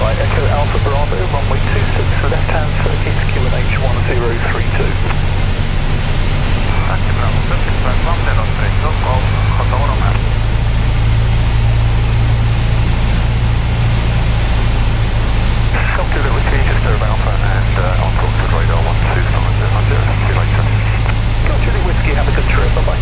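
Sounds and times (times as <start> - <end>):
indistinct voices: 0.0 - 10.8, 15.6 - 23.0
aircraft engine and propeller droning: 0.0 - 23.0.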